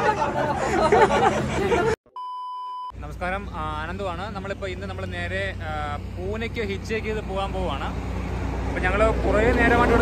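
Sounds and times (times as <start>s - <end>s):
highway traffic rumble: 0.0s - 2.0s, 3.0s - 10.0s.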